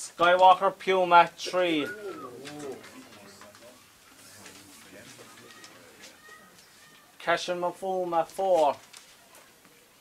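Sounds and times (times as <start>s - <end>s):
man making announcement: 0.0s - 6.3s, 7.2s - 8.8s
low murmur of voices: 1.0s - 10.0s.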